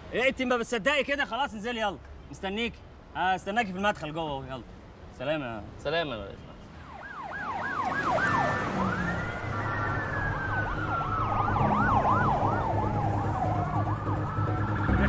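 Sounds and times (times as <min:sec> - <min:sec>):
police siren wailing: 0:06.8 - 0:15.0
police sirens yelping: 0:06.8 - 0:15.0.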